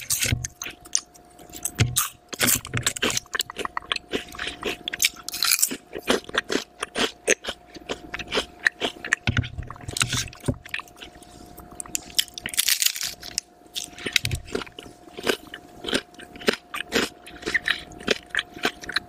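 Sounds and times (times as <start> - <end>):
crunchy chewing: 0.0 - 19.0
faint steady hum: 0.0 - 19.0.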